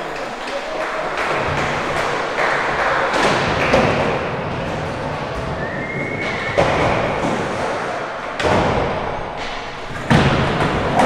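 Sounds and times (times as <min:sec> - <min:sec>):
skateboard impacts: 0:00.0 - 0:11.0
skateboard wheels rolling: 0:00.0 - 0:11.0.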